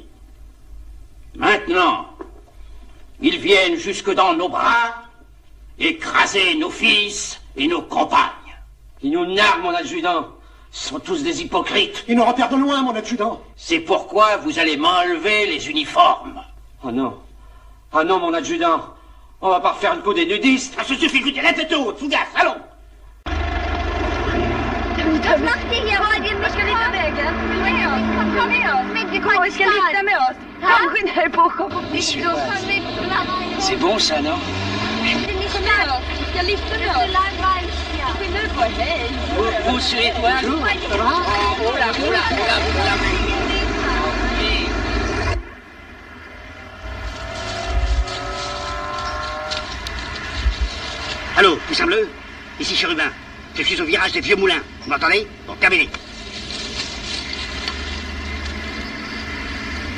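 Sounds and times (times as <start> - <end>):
heavy truck engine running: 23.2 - 46.2, 46.8 - 59.9.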